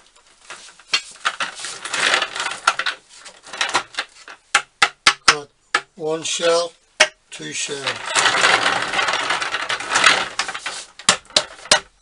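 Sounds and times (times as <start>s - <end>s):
casters rolling on concrete: 0.0s - 12.0s.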